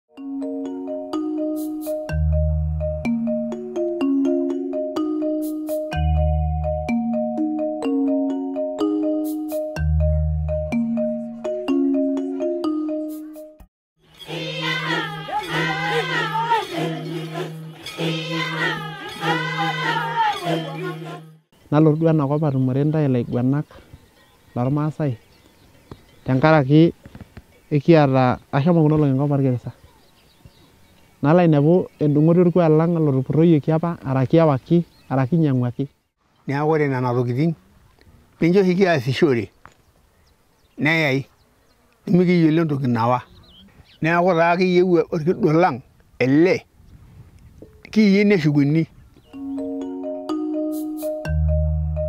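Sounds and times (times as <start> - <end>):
higher voice gliding singing: 14.1 - 21.4.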